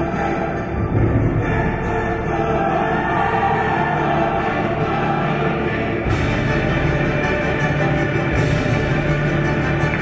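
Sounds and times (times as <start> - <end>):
choir singing: 0.0 - 10.0
orchestral accompaniment: 0.0 - 10.0.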